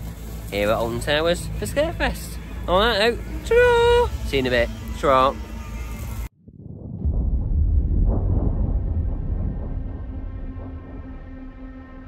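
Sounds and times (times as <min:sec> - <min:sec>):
deep rumble: 0:05.6 - 0:12.0.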